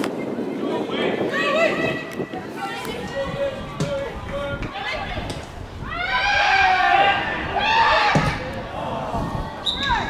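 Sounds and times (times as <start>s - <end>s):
players shouting: 2.6s - 10.0s
football kicked and bouncing: 3.8s - 4.0s.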